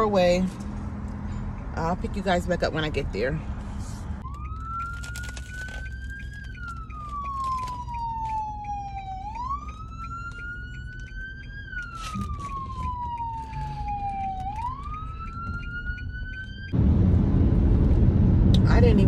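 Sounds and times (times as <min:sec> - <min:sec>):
road noise inside a car: 0:00.0 - 0:19.0
siren wailing: 0:04.2 - 0:16.8.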